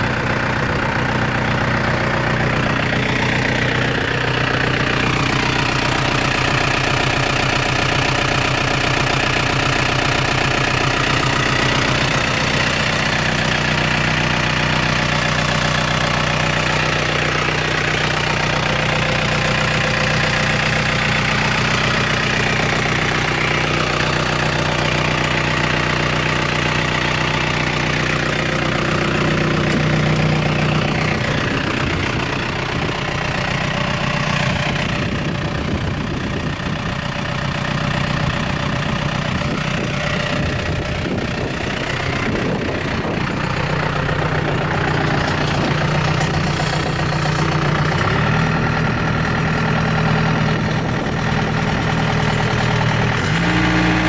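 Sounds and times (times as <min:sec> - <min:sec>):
tractor diesel engine idling: 0:00.0 - 0:54.0.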